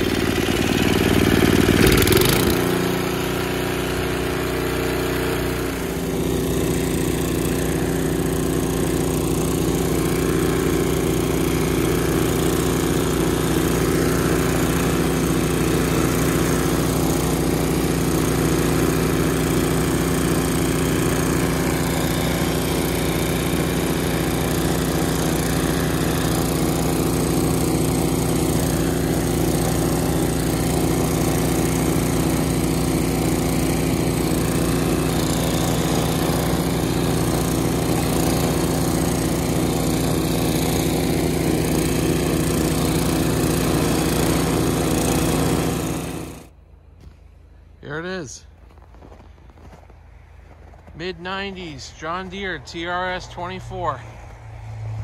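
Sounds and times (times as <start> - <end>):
snowblower engine running: 0.0 - 55.0.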